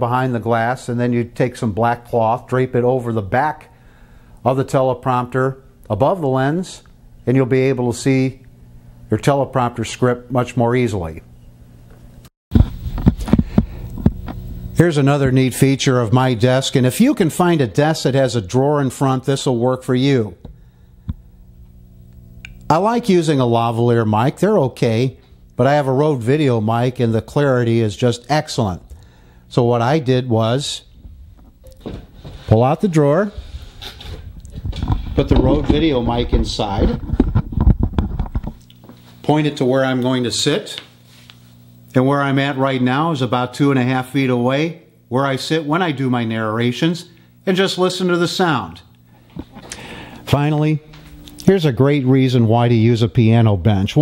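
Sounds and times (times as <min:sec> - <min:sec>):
electrical mains hum: 0:00.0 - 0:54.0
microphone handling knocks and clicks: 0:12.5 - 0:14.5, 0:31.0 - 0:32.4, 0:33.5 - 0:38.6
soft low thumps: 0:12.5 - 0:14.8
man speaking: 0:14.8 - 0:20.4, 0:22.7 - 0:28.9, 0:29.5 - 0:30.9, 0:32.5 - 0:33.4, 0:35.2 - 0:37.0, 0:39.2 - 0:40.9, 0:41.9 - 0:48.9, 0:50.3 - 0:54.0.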